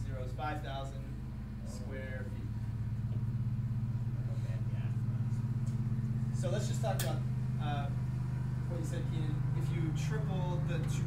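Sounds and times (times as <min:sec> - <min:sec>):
low pulsing hum: 0:00.0 - 0:11.0.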